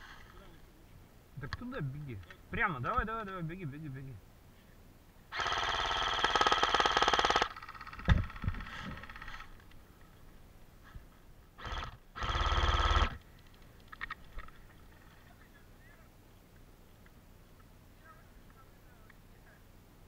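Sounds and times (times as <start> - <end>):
airsoft rifle firing bursts: 5.3 - 9.5, 11.6 - 13.2.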